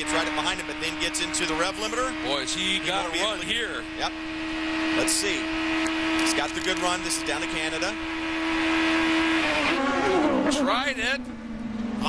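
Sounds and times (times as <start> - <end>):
race car engine at full throttle: 0.0 - 12.0.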